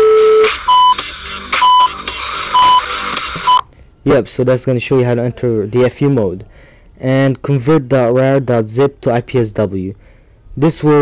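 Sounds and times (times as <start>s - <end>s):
electronic countdown beeps: 0.0s - 1.0s, 1.6s - 2.0s, 2.6s - 2.9s
electronic music: 0.0s - 3.6s.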